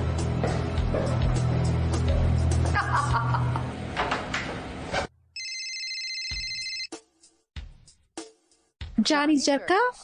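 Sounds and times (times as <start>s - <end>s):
electronic telephone ring: 5.4s - 6.9s.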